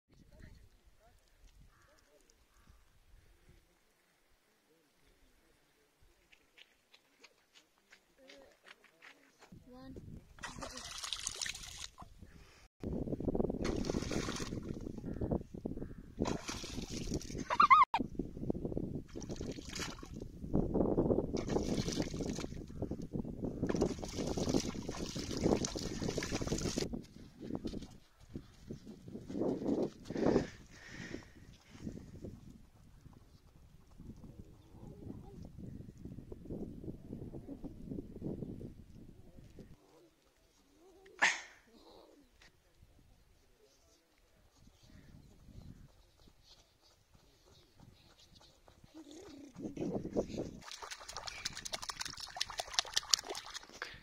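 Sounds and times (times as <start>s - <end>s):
water splashing from hands: 10.4s - 12.1s, 13.6s - 14.8s, 16.2s - 17.5s, 19.1s - 20.2s, 21.4s - 22.6s, 23.7s - 26.8s, 50.6s - 54.0s.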